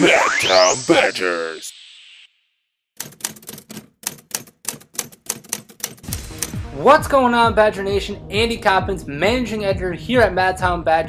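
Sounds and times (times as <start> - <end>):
typewriter keys clacking: 3.0 - 6.6.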